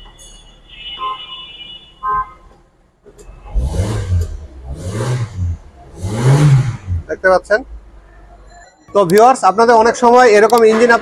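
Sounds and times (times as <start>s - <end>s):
car engine starting and revving: 3.3s - 7.9s
brief tones: 8.2s - 8.9s.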